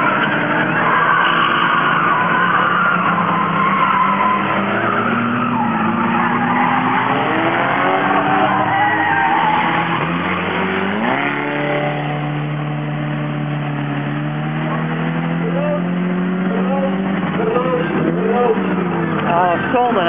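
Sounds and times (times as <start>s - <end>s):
race car engines revving: 0.0s - 20.0s
tyres skidding: 0.0s - 20.0s.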